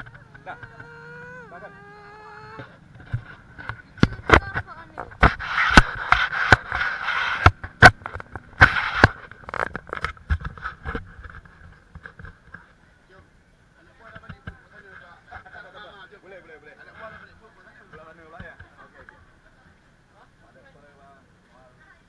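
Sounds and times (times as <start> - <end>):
faint background voices: 0.0 - 5.4.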